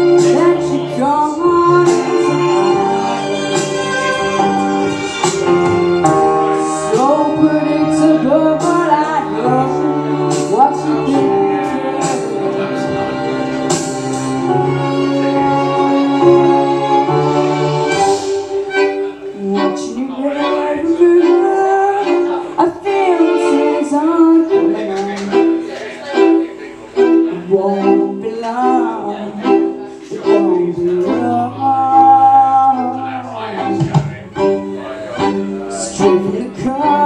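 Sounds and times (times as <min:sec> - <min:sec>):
amplified violin melody: 0:00.0 - 0:37.0
sustained low backing notes: 0:00.0 - 0:37.0.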